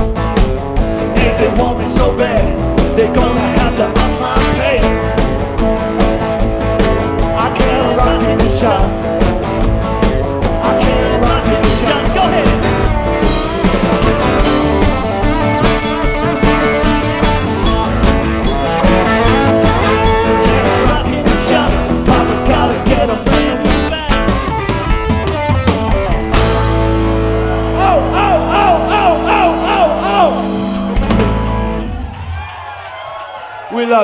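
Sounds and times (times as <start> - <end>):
rock band playing live: 0.0 - 33.6.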